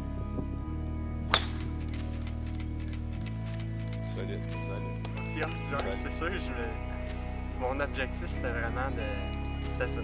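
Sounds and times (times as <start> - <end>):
background music with low chords: 0.0 - 10.0
golf club striking ball: 1.3 - 2.3.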